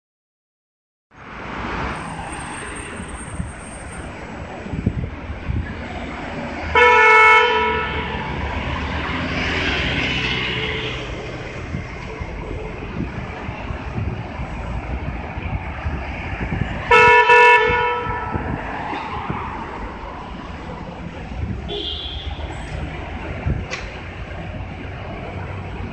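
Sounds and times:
city traffic noise: 1.1s - 25.9s
bus driving away: 1.2s - 25.9s
vehicle horn honks: 6.7s - 8.4s, 16.9s - 18.5s, 21.7s - 22.5s.

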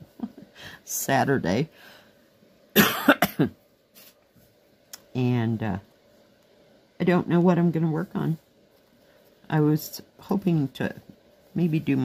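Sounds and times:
woman coughing: 2.8s - 3.6s.

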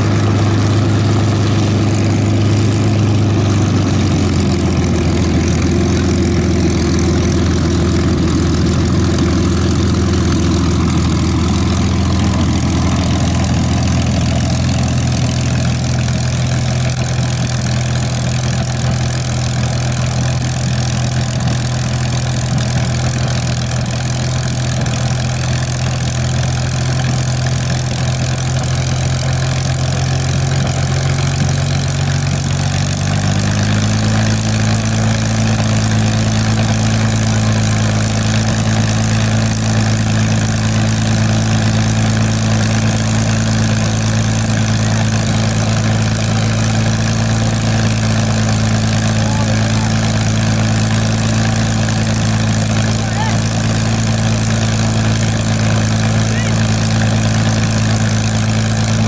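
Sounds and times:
propeller aircraft engine running: 0.0s - 59.0s.

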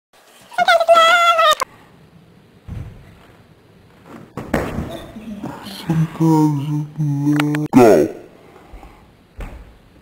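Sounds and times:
child yelling: 0.6s - 1.6s.

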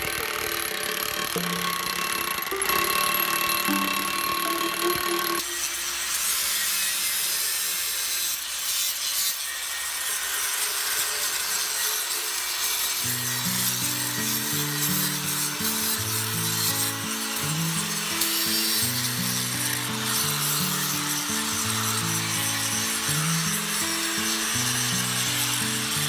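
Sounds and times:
angle grinder grinding stone: 0.0s - 26.0s
background music with melody: 1.3s - 5.6s, 13.1s - 26.0s.

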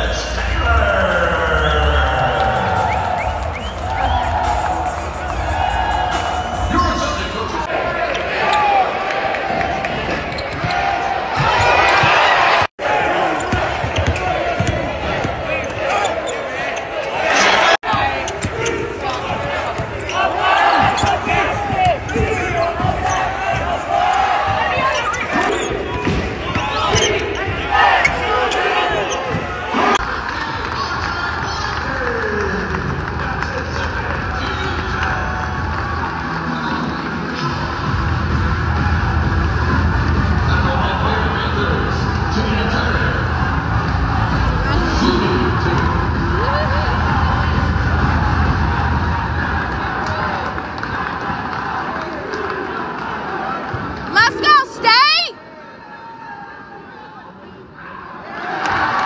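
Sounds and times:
crowd murmur: 0.0s - 55.6s
players' voices: 0.0s - 59.0s.

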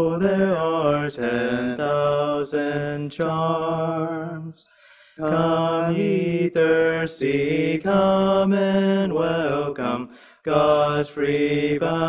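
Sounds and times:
two men singing a hymn: 0.0s - 12.0s.

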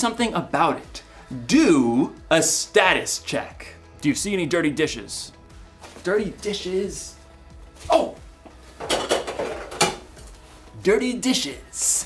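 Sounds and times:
dishes clattering: 8.8s - 10.1s.

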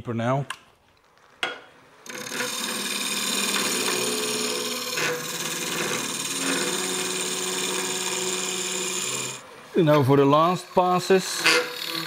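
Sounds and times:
lathe hum: 1.4s - 12.0s
steel tool scraping wood: 2.0s - 9.4s, 10.8s - 12.0s.

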